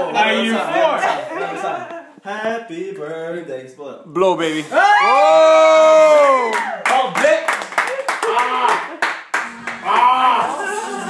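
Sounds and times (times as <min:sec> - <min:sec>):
whoops and excited voices: 0:04.7 - 0:06.9, 0:09.8 - 0:11.0
hand claps: 0:06.5 - 0:10.1.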